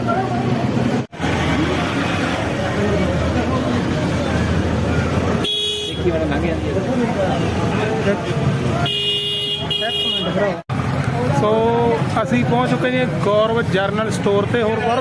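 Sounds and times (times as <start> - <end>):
vehicle horn: 5.4 - 6.1, 8.8 - 10.4.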